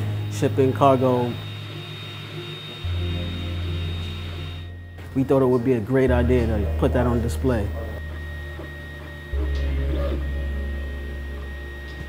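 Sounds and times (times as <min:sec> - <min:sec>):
stepper motors whining: 0:00.0 - 0:05.4
loud low steady hum: 0:00.0 - 0:12.0.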